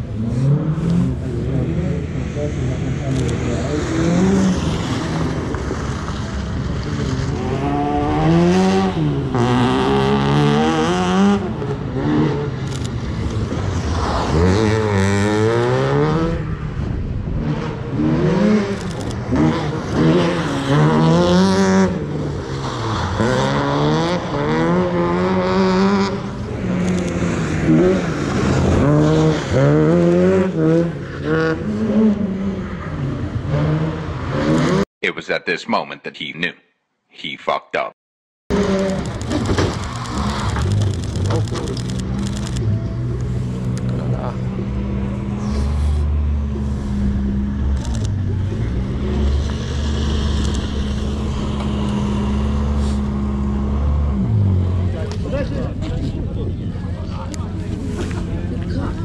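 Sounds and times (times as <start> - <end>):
car engine revving hard: 0.0 - 34.9, 38.5 - 42.8, 43.6 - 55.2.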